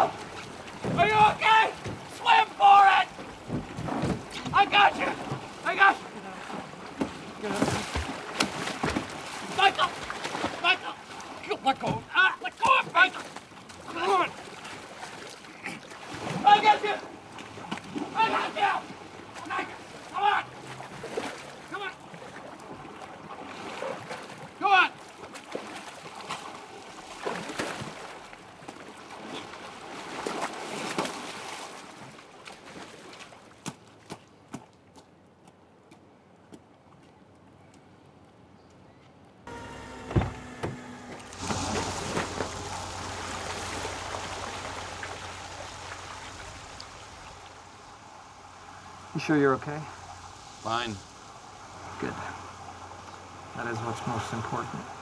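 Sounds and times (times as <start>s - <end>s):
water splashing and sloshing: 0.0s - 37.4s, 39.5s - 55.0s
people shouting: 0.9s - 3.2s, 4.5s - 6.1s, 9.5s - 10.0s, 11.8s - 13.2s, 16.4s - 17.1s, 18.1s - 20.6s, 21.7s - 22.0s
low hum: 39.5s - 55.0s
steady hiss: 39.5s - 55.0s.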